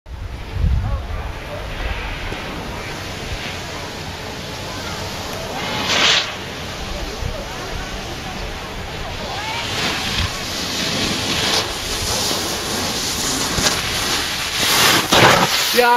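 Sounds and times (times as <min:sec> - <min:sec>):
wind noise on microphone: 0:00.1 - 0:15.2
snowboard scraping over snow: 0:00.3 - 0:15.9.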